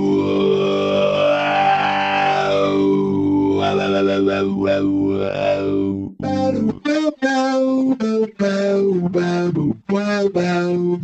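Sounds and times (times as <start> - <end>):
talking guitar vocoder sound: 0.0 - 11.0.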